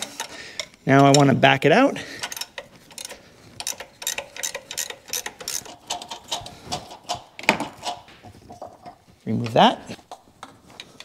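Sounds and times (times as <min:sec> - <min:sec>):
socket ratchet clicking: 0:02.2 - 0:08.0.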